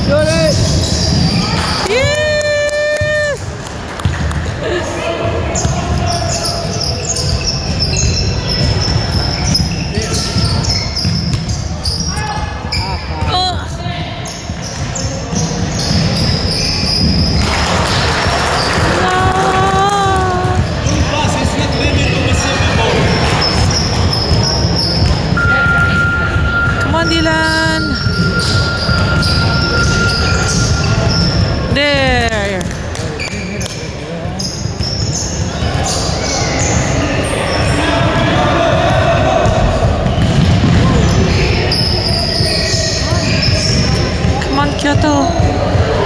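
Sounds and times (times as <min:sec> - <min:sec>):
sneaker squeaks: 0:00.0 - 0:02.0, 0:05.4 - 0:19.0, 0:19.6 - 0:32.2, 0:33.0 - 0:46.0
spectators' voices: 0:00.0 - 0:10.8, 0:11.9 - 0:46.0.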